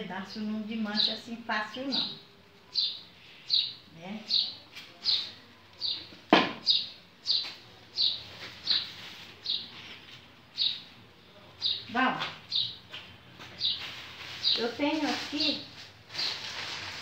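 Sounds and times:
bird chirping: 0.2s - 15.6s.

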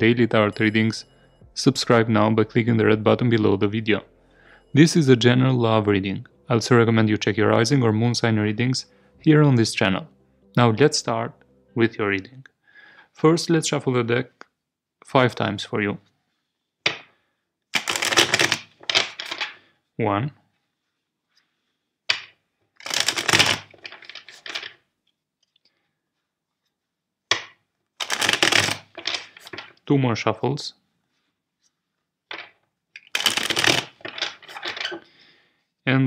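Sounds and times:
cards being shuffled by hand: 17.8s - 19.5s, 22.8s - 24.8s, 28.0s - 29.8s, 32.4s - 35.0s.

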